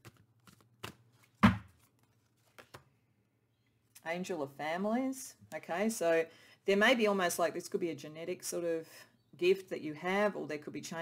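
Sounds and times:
card knocked down on table: 1.4 - 1.7.

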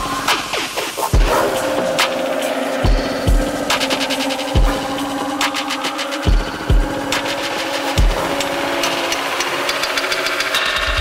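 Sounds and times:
electronic dance music: 0.0 - 11.0
deep bass hit: 4.6 - 5.2.

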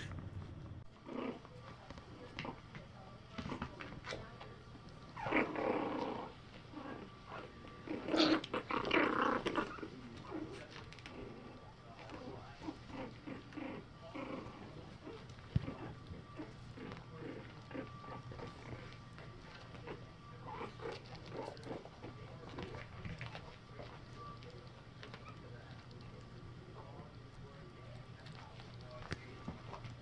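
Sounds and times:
puppies growling: 0.0 - 30.0.

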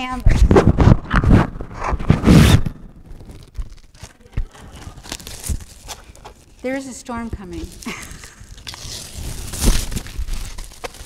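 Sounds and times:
plastic wrap crinkling and tearing: 0.0 - 11.0.

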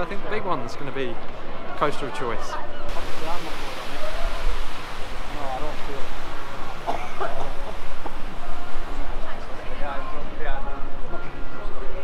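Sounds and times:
people talking in background: 0.0 - 12.0
rushing outdoor noise: 0.0 - 12.0.

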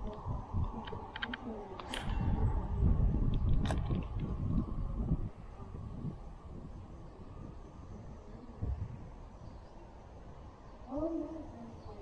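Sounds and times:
wind buffeting microphone: 0.0 - 12.0
sharp clicks: 0.1 - 2.2.

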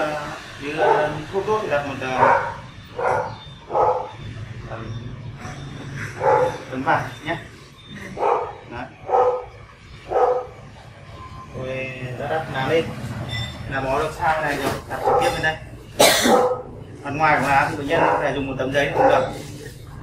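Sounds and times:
dog barking: 0.7 - 1.2, 2.2 - 4.2, 6.2 - 6.7, 8.1 - 10.6, 15.0 - 16.7, 17.8 - 19.6.

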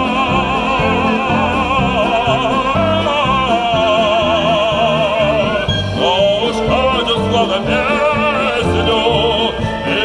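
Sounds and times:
wind band playing folk tune: 0.0 - 10.0.

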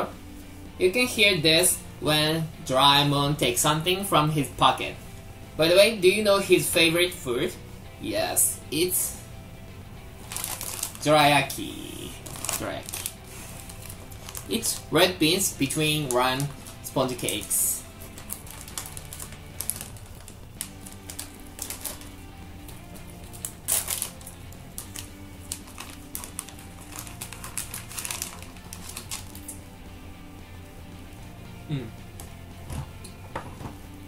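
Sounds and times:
background music: 0.0 - 34.0
plastic wrapper crinkling: 10.2 - 11.1, 12.0 - 29.6.

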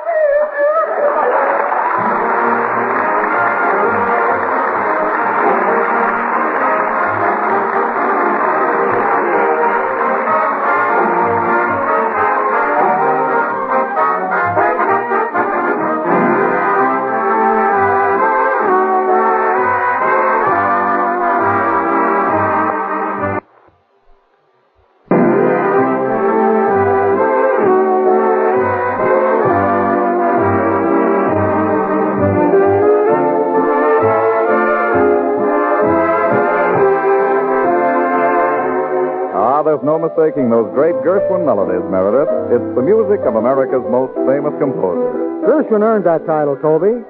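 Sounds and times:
brass-led orchestra music: 0.8 - 23.5, 25.1 - 47.0.

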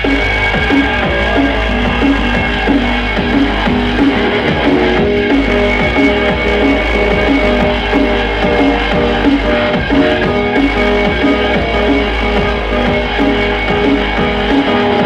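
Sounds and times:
drum and bass music: 0.0 - 15.0.

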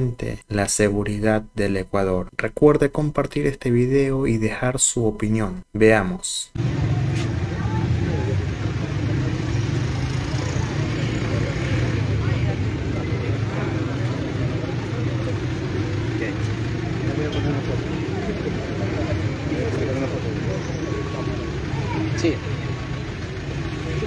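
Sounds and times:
crowd voices: 6.6 - 24.0
passing traffic hum: 6.6 - 24.0.

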